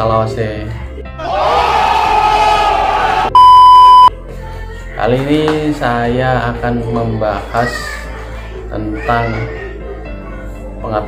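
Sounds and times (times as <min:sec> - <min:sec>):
crowd shout: 0:01.2 - 0:03.4
censor bleep: 0:03.4 - 0:04.1.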